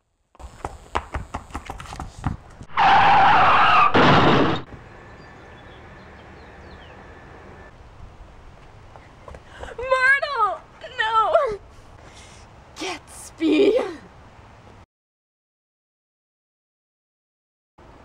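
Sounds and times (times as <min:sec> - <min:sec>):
car tyres screeching: 0:02.7 - 0:07.7
steady low hiss: 0:04.7 - 0:14.8.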